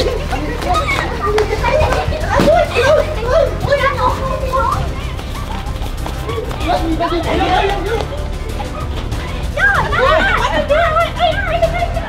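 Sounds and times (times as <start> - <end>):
young people shouting and laughing: 0.0 - 12.0.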